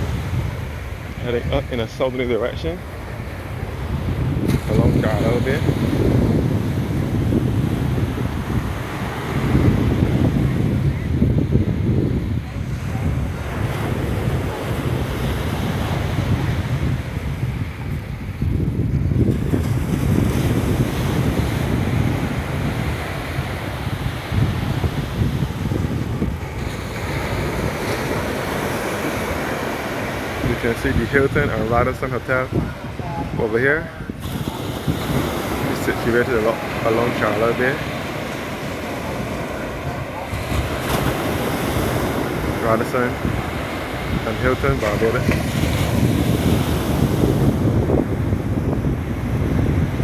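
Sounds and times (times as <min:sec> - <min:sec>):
surf washing onto sand: 0:00.0 - 0:50.0
wind rumbling on microphone: 0:00.0 - 0:50.0.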